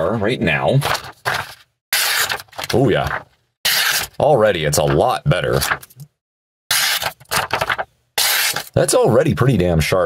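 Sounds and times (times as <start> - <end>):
knife slicing paper: 3.7 - 4.2, 6.7 - 8.8.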